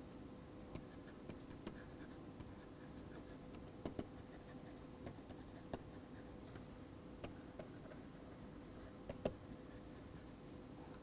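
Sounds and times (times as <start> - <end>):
stylus scratching on screen: 0.6 - 6.6, 7.2 - 10.4
pen tip tapping screen: 9.1 - 9.4.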